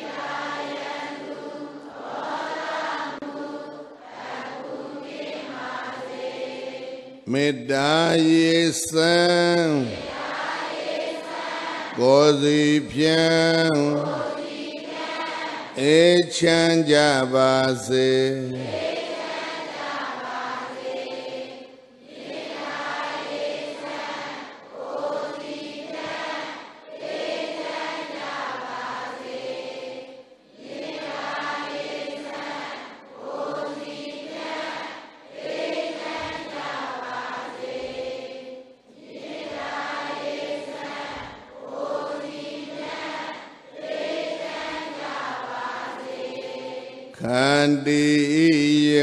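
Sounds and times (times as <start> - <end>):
congregation chanting in unison: 0.0 - 49.0.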